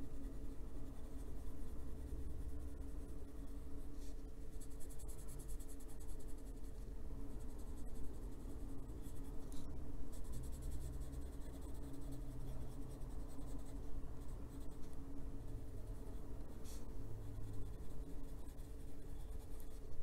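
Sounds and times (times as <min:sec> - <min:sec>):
pencil scratching on paper: 0:00.0 - 0:20.0.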